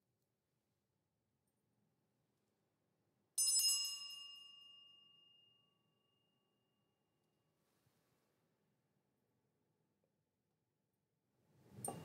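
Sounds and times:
brass handbell ringing: 0:03.4 - 0:05.4.

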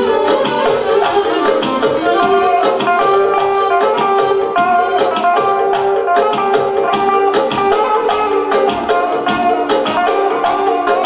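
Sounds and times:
electric guitar melody: 0:00.0 - 0:11.0
keyboard accompaniment with beat: 0:00.0 - 0:11.0.

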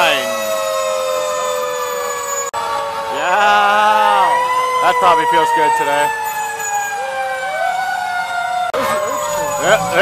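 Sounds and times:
fire truck siren wailing: 0:00.0 - 0:10.0
lower siren tone rising: 0:00.0 - 0:10.0.

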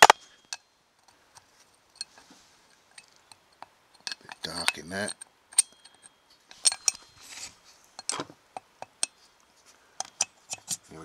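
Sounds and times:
metal valve clicking and clinking: 0:02.9 - 0:07.1, 0:08.0 - 0:09.2, 0:10.0 - 0:10.7.

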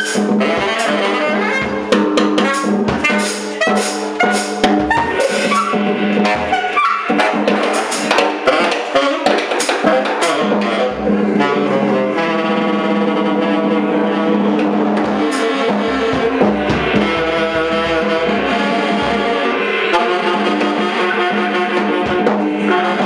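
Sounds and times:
tenor saxophone long notes: 0:00.0 - 0:07.6, 0:08.4 - 0:23.0
free-time drumming: 0:00.0 - 0:13.5, 0:14.1 - 0:23.0.

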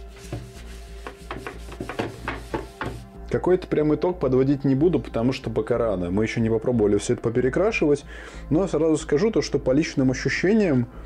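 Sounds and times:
rag rubbing on board: 0:00.0 - 0:03.1.

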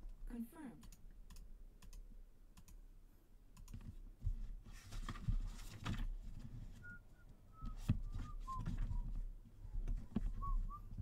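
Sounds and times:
computer mouse clicks: 0:00.8 - 0:02.8, 0:03.5 - 0:03.9.

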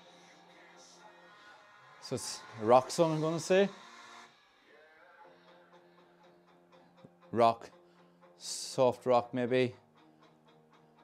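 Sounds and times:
faint rock song: 0:00.0 - 0:11.0.

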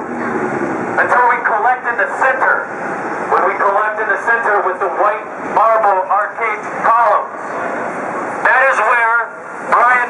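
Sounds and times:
street hum: 0:00.0 - 0:10.0
man speaking through megaphone: 0:01.0 - 0:02.7, 0:03.3 - 0:07.4, 0:08.4 - 0:10.0.

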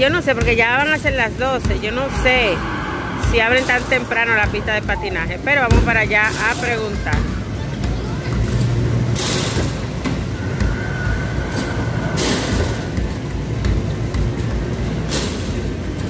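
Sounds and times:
basketballs hitting backboard and hoop: 0:00.0 - 0:02.2, 0:04.4 - 0:16.0
arcade rumble and chatter: 0:00.0 - 0:16.0.

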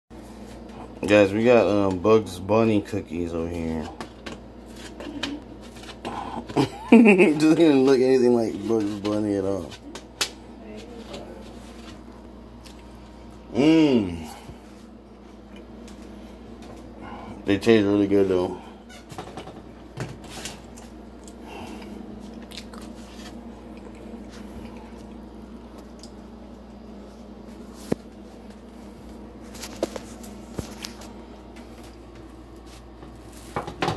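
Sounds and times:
steady low hum: 0:00.1 - 0:33.9
person chewing cookie: 0:20.7 - 0:26.4.

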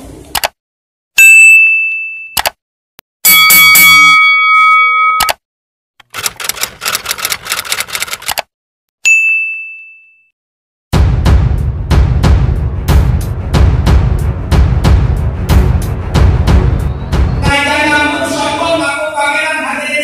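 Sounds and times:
bell-like ding: 0:01.3 - 0:02.4, 0:03.3 - 0:05.3, 0:09.1 - 0:10.3
multi-tone chime: 0:03.3 - 0:05.3
phone keyboard typing clicks: 0:06.0 - 0:08.5.

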